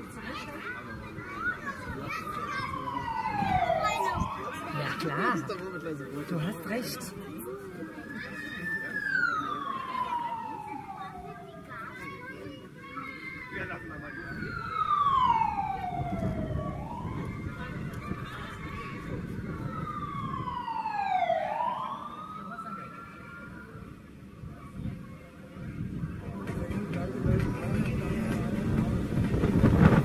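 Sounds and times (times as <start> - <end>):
low crowd noise: 0.0 - 30.0
siren wailing: 2.2 - 7.0, 7.8 - 11.6, 13.6 - 23.8.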